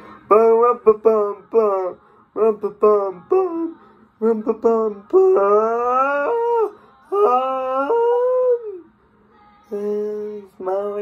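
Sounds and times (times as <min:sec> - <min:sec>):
man singing held note: 0:00.0 - 0:08.9, 0:09.6 - 0:11.0.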